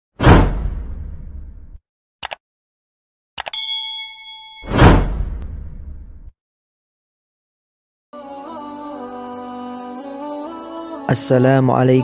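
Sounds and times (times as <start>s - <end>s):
whoosh with deep boom: 0.2s - 1.8s, 4.7s - 6.3s
notification ding: 3.5s - 5.1s.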